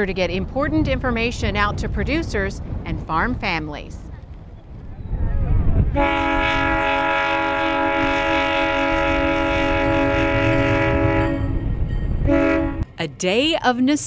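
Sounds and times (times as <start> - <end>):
low rumble of moving train: 0.0 - 14.0
locomotive air horn blasts: 5.9 - 11.6, 12.2 - 12.9.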